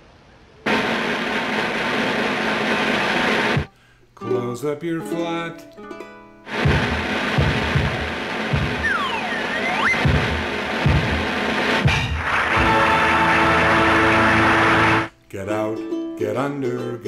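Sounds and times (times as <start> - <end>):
old film soundtrack music: 5.6 - 15.1
low thuds: 6.6 - 9.2
whistle-like glide: 8.8 - 10.0.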